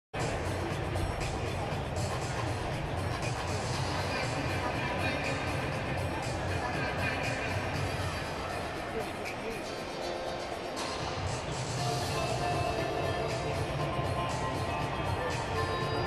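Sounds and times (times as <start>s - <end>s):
murmur of crowd chatter: 0.2s - 16.0s
music over public address system: 0.2s - 16.0s.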